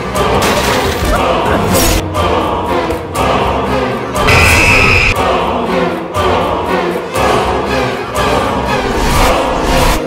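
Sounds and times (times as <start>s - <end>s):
choir singing: 0.0s - 10.0s
orchestral music: 0.0s - 10.0s.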